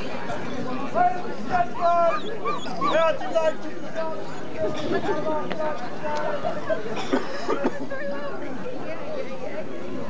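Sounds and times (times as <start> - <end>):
crowd chatter: 0.0 - 10.0
dog yapping and whining: 2.1 - 3.1.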